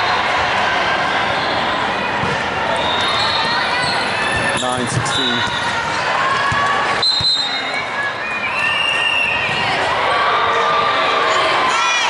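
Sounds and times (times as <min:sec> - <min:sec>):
reverberant babble of voices: 0:00.0 - 0:12.0.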